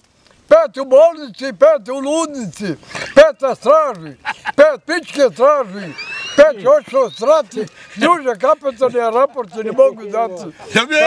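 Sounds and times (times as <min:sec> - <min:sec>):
man talking fast: 0:00.5 - 0:11.0.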